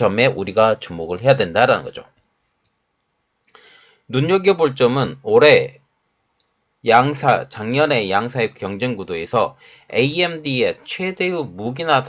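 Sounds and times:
soft intake of breath: 0:03.5 - 0:04.1, 0:09.6 - 0:10.0.

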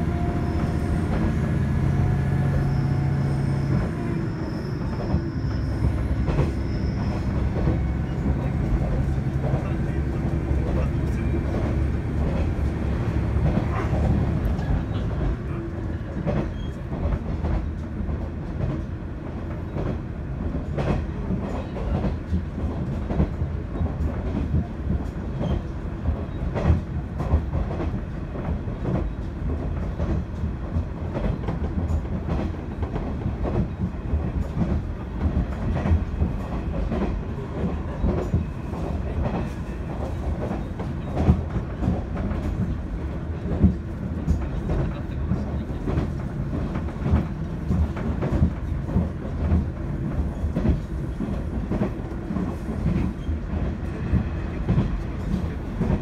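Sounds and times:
train engine and rolling drone: 0:00.0 - 0:56.0.

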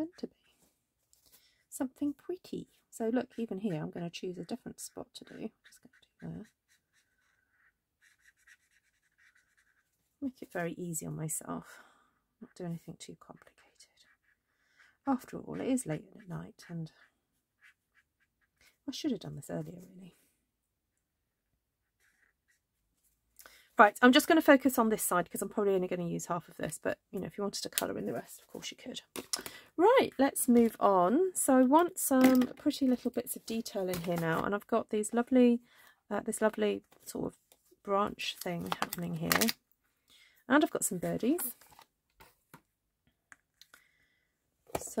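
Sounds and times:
woman speaking: 0:00.0 - 0:00.4, 0:01.7 - 0:06.5, 0:10.2 - 0:11.8, 0:12.4 - 0:14.0, 0:15.0 - 0:17.1, 0:18.9 - 0:20.2, 0:23.8 - 0:39.6, 0:40.5 - 0:41.6, 0:44.8 - 0:45.0
marker pen strokes on card: 0:03.0 - 0:10.0, 0:12.8 - 0:16.8, 0:17.6 - 0:18.8, 0:21.8 - 0:22.7.

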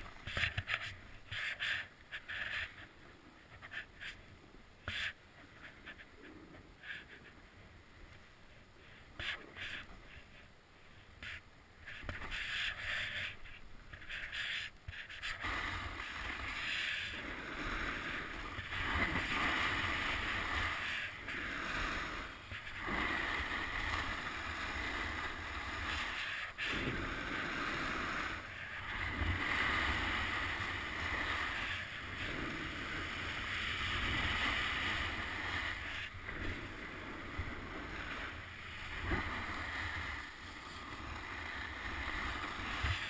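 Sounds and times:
skis carving snow hiss: 0:00.0 - 0:04.2, 0:08.1 - 0:43.0
wind rumbling on microphone: 0:14.9 - 0:43.0.

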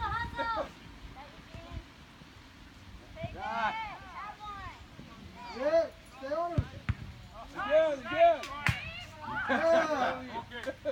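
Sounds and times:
soft thump: 0:06.5 - 0:07.1.

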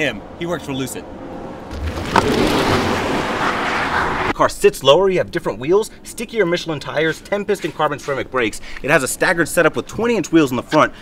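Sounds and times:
tyres and air rushing: 0:01.0 - 0:04.4.

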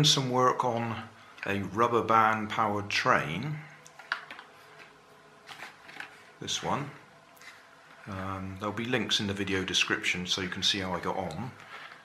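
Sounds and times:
faint steady hum: 0:00.0 - 0:12.0
toy handling clicks and rustles: 0:03.8 - 0:06.3.

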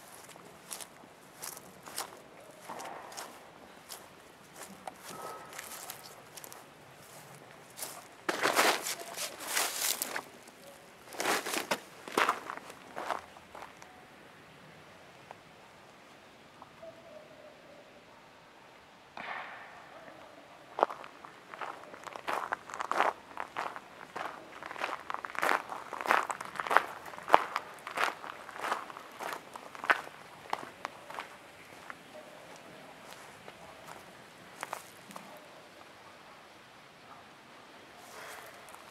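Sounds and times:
footsteps crunching on gravel: 0:00.0 - 0:13.8, 0:20.8 - 0:35.3.

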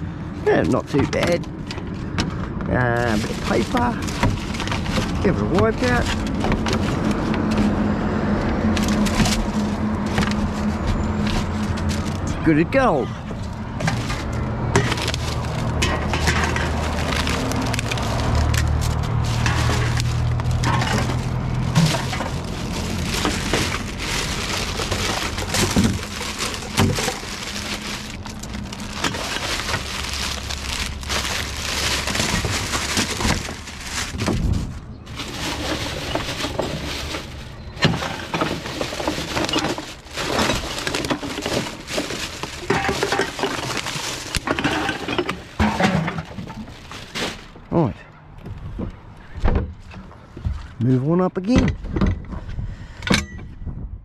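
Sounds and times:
plastic bags rustling: 0:00.3 - 0:47.9
cans and bottles clinking: 0:13.2 - 0:33.6, 0:35.2 - 0:47.3.

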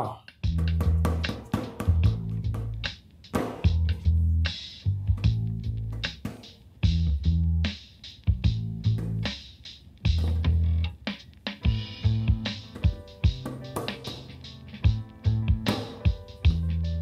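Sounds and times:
bass line: 0:00.4 - 0:01.2, 0:01.9 - 0:02.9, 0:03.7 - 0:06.1, 0:06.8 - 0:07.7, 0:08.3 - 0:09.4, 0:10.1 - 0:11.0, 0:11.7 - 0:17.0.

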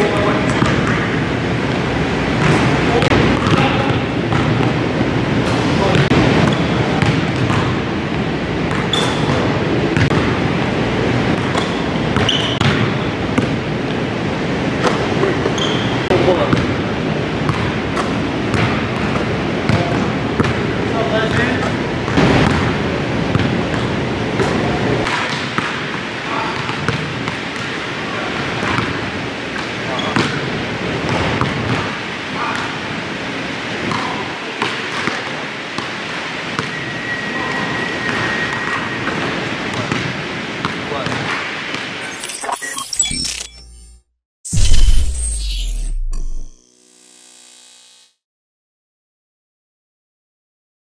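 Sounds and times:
basketballs bouncing on court: 0:00.0 - 0:01.2, 0:02.4 - 0:04.8, 0:05.8 - 0:10.4, 0:11.3 - 0:13.6, 0:16.3 - 0:16.8, 0:17.4 - 0:27.8, 0:28.4 - 0:29.0, 0:29.6 - 0:30.4, 0:33.8 - 0:35.9, 0:36.6 - 0:36.8
electronic sound effect: 0:42.0 - 0:48.2.

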